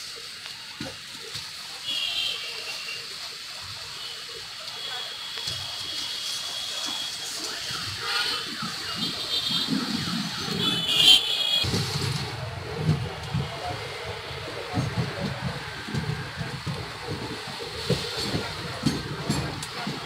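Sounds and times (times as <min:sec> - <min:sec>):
train coach rumbling on rails: 0:05.5 - 0:20.0.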